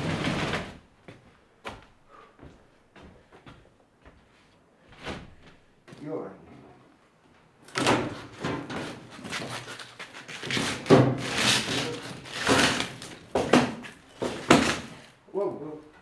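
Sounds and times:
heavy machine scraping on tiles: 0.0 - 0.8, 10.3 - 13.1.

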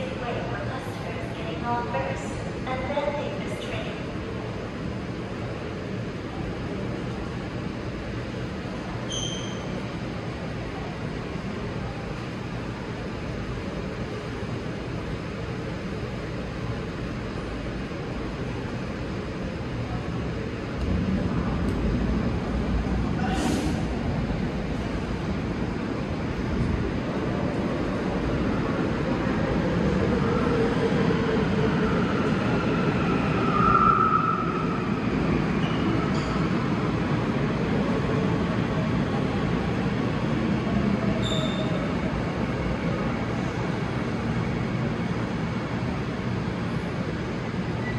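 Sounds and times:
train rumbling to a stop: 0.0 - 47.9
brake squeal: 9.1 - 9.7, 41.2 - 41.8.

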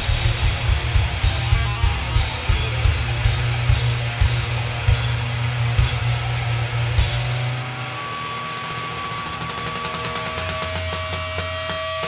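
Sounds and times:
low amp hum: 0.0 - 11.5
guitar amp feedback tone: 0.0 - 12.0.

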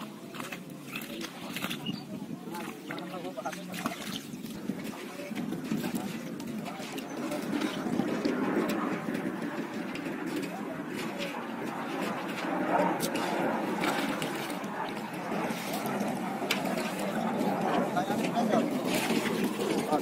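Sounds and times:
indistinct chatter outdoors: 0.0 - 20.0.

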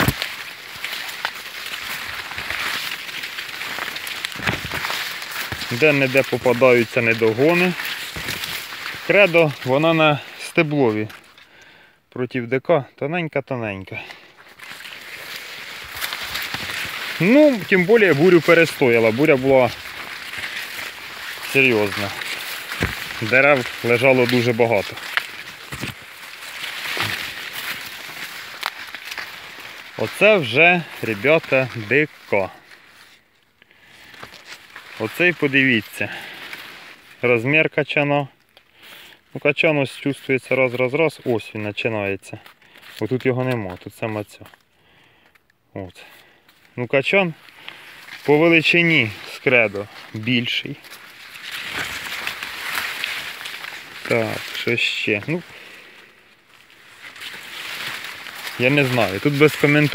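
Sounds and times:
footsteps: 0.0 - 11.8, 13.9 - 37.4, 46.0 - 59.9
maize leaves rustling: 0.0 - 12.2, 13.4 - 59.9
crackles: 0.0 - 59.9.

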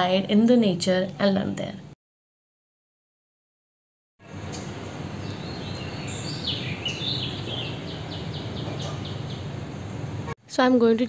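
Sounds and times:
outdoor background noise: 4.2 - 11.0
songbird chirping: 4.3 - 10.0.

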